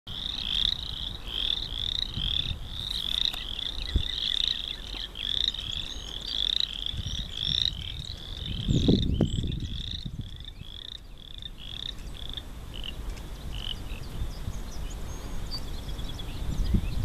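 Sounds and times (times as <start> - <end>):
chorus of small frogs calling: 0.1 - 14.2.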